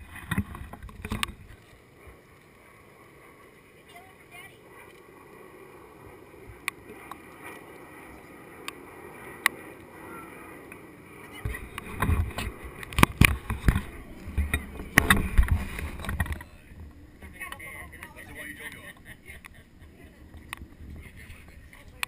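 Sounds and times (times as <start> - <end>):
low rumbling on microphone: 4.6 - 22.0
faint clicks: 6.5 - 9.9, 20.3 - 22.0.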